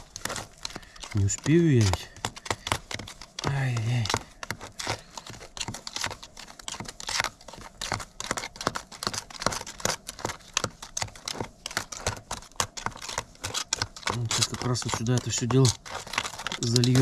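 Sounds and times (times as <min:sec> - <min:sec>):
putty knife scraping plastic tub: 0:00.0 - 0:17.0.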